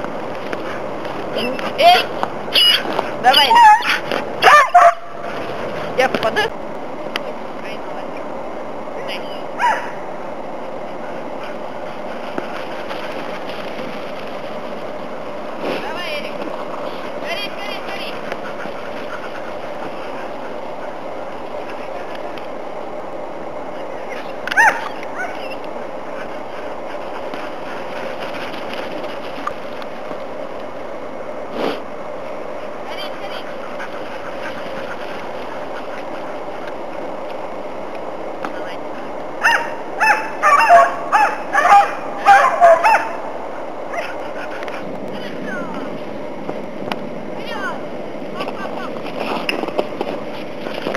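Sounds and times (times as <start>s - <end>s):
steady rushing background noise: 0.0s - 50.9s
dogs barking: 1.8s - 5.5s, 9.6s - 10.1s, 24.4s - 28.1s, 39.4s - 44.9s.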